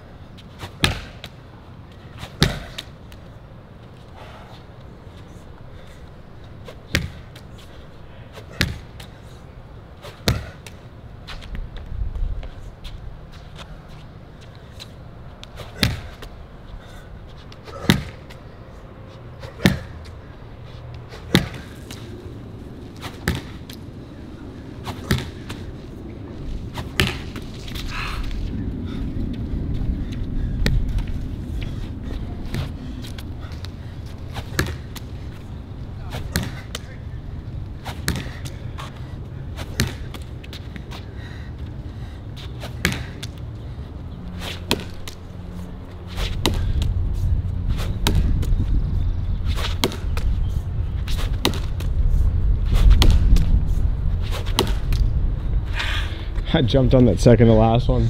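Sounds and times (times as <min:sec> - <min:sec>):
low rumble: 0:23.8 - 0:34.4
ball caught in a stick: 0:54.4 - 0:55.0.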